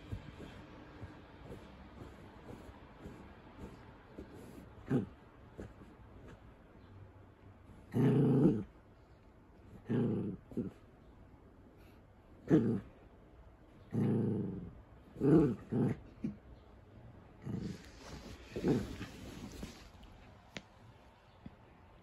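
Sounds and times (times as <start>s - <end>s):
dog growling: 0.1s - 6.0s, 7.8s - 8.8s, 9.7s - 10.8s, 12.4s - 12.9s, 13.8s - 16.4s, 17.4s - 19.8s.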